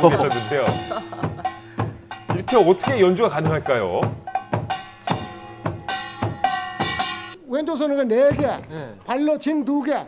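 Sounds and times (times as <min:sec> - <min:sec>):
drum strokes: 0:00.0 - 0:07.4.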